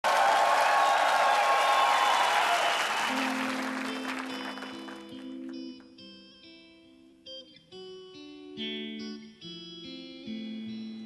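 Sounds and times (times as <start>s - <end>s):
audience applause: 0.0s - 5.8s.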